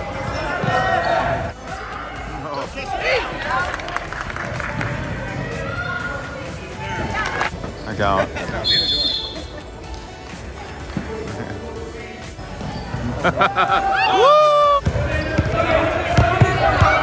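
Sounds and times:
spectators shouting and chatting: 0:00.0 - 0:17.0.

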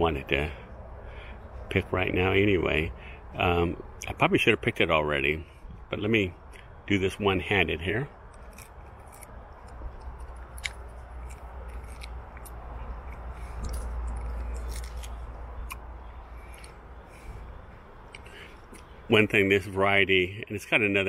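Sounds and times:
fruit skin crackling: 0:06.4 - 0:19.0.

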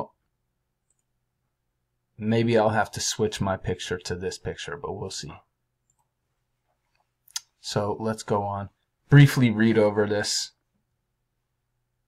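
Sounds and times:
computer mouse click: 0:00.8 - 0:01.1, 0:05.8 - 0:06.1.

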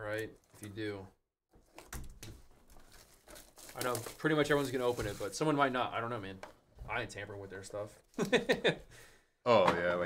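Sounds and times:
plastic shrink wrap tearing: 0:02.7 - 0:05.4.

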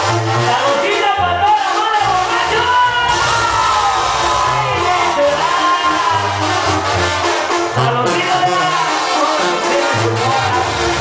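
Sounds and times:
live band music: 0:00.0 - 0:11.0
man singing into a microphone: 0:00.4 - 0:03.4, 0:04.7 - 0:06.5, 0:07.8 - 0:11.0
crowd shouting: 0:01.5 - 0:11.0.

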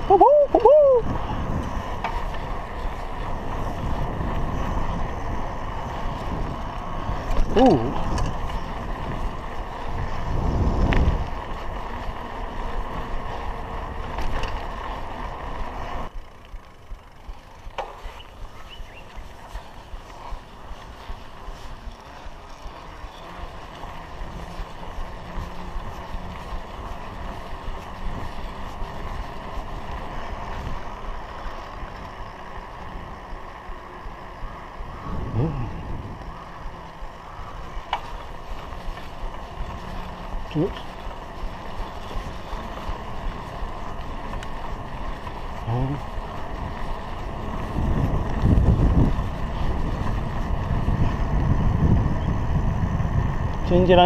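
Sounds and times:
wind noise: 0:00.0 - 0:16.1, 0:17.6 - 0:33.4, 0:34.1 - 0:54.0
bicycle tyres on tarmac: 0:00.0 - 0:54.0.

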